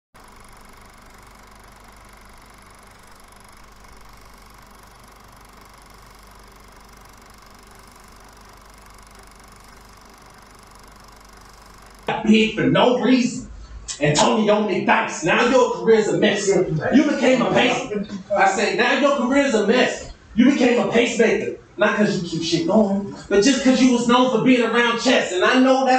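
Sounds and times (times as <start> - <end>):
faint hum: 0.2 - 25.9.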